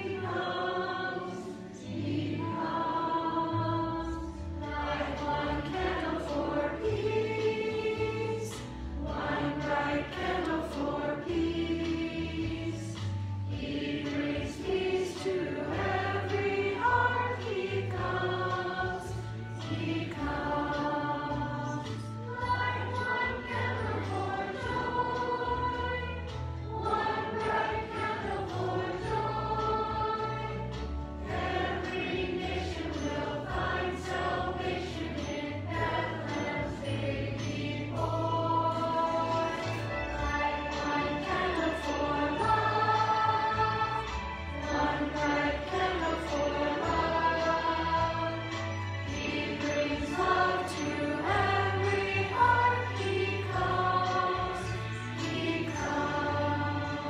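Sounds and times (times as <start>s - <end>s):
congregation singing a hymn: 0.0s - 57.0s
instrumental accompaniment: 0.0s - 57.0s.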